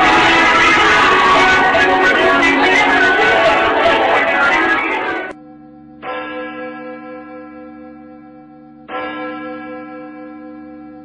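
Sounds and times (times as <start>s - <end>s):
large bell tolling: 0.0s - 5.4s.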